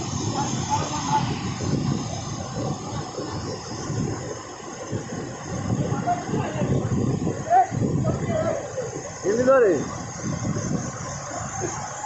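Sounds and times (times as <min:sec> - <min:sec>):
waterfall roar: 0:00.0 - 0:12.0.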